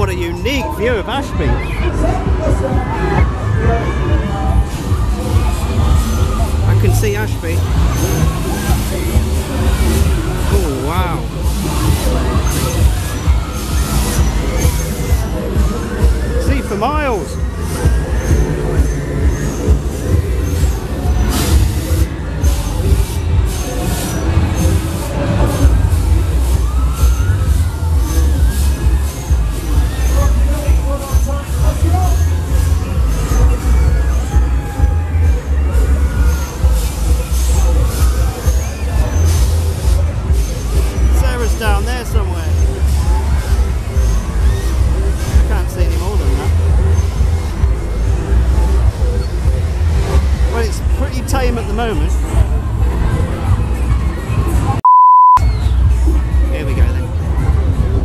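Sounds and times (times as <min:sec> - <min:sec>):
fairground music: 0:00.0 - 0:54.8
rumbling noise: 0:01.8 - 0:54.8
high-pitched censor bleep: 0:54.8 - 0:55.4.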